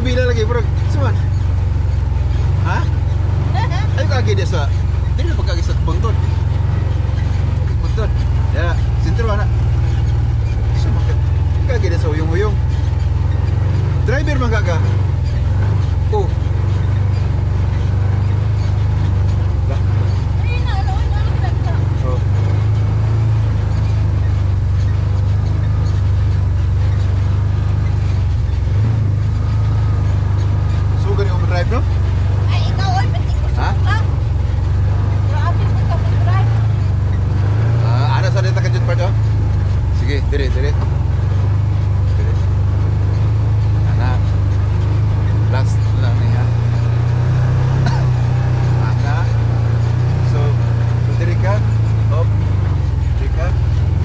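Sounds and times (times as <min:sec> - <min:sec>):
people talking: 0:00.0 - 0:01.2, 0:02.6 - 0:06.3, 0:07.7 - 0:09.5, 0:10.7 - 0:12.6, 0:14.0 - 0:16.6, 0:19.6 - 0:22.7, 0:31.0 - 0:31.9, 0:32.5 - 0:34.2, 0:35.3 - 0:36.6, 0:37.8 - 0:39.2, 0:40.0 - 0:40.9, 0:42.1 - 0:42.5, 0:43.9 - 0:44.3, 0:45.4 - 0:46.7, 0:47.7 - 0:49.4, 0:50.2 - 0:52.4, 0:53.1 - 0:53.6
vehicle engine droning: 0:00.0 - 0:54.0.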